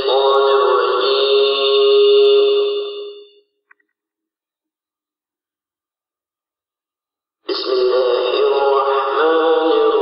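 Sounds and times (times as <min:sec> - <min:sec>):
man chanting religious recitation: 0:00.0 - 0:02.6, 0:07.5 - 0:10.0.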